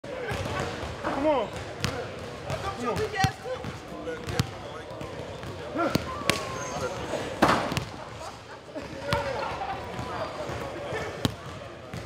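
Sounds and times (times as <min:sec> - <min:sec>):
players' voices and shouts: 0:00.1 - 0:12.0.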